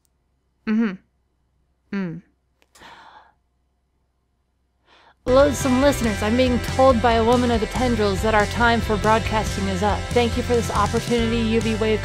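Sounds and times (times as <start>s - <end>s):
person humming hmm: 0.6s - 1.1s, 1.9s - 2.3s
breathy sigh: 2.0s - 3.4s.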